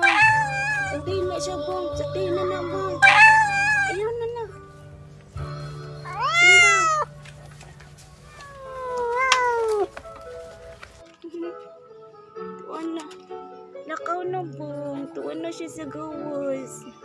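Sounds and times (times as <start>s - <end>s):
cat yowling: 0.0s - 1.1s, 2.7s - 4.0s, 6.1s - 7.1s, 8.2s - 9.9s
background music: 0.0s - 17.0s.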